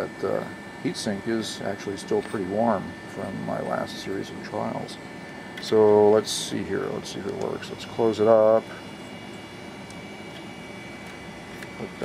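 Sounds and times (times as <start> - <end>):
thin high whine: 0.0 - 12.0.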